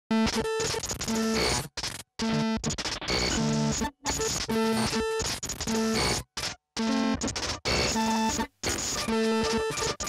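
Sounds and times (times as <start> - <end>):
glitchy electronic music: 0.1 - 10.0.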